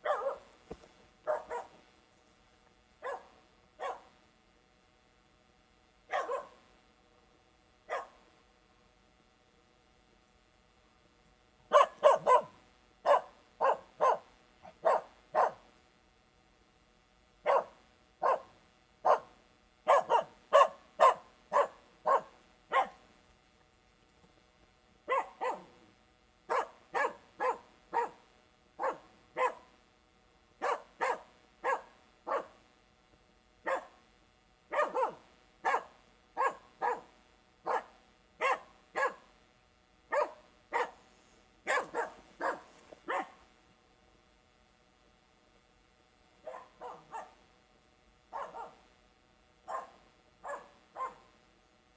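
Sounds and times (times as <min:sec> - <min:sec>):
dog barking in distance: 0:00.0 - 0:00.5, 0:01.2 - 0:01.8, 0:03.0 - 0:04.2, 0:06.1 - 0:06.7, 0:07.9 - 0:08.2, 0:11.7 - 0:15.7, 0:17.4 - 0:23.0, 0:25.1 - 0:25.8, 0:26.5 - 0:28.2, 0:28.8 - 0:29.7, 0:30.6 - 0:32.6, 0:33.6 - 0:34.0, 0:34.7 - 0:39.3, 0:40.1 - 0:41.0, 0:41.6 - 0:43.4, 0:46.4 - 0:47.4, 0:48.3 - 0:48.8, 0:49.6 - 0:51.4.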